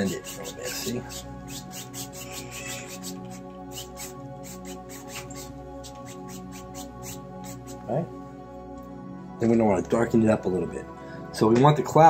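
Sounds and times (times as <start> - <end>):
paintbrush scrubbing canvas: 0.0 - 7.8
soft background music: 0.0 - 12.0.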